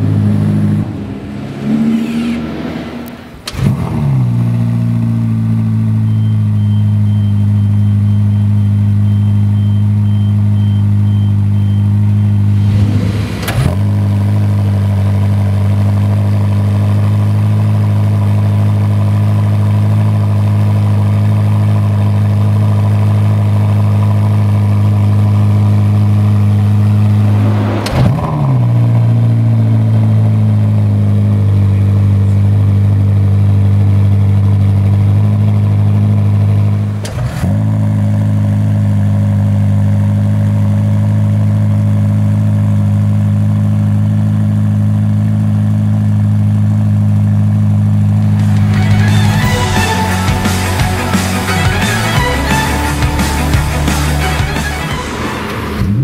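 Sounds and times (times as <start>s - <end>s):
car engine idling with revving flare: 0.0s - 56.0s.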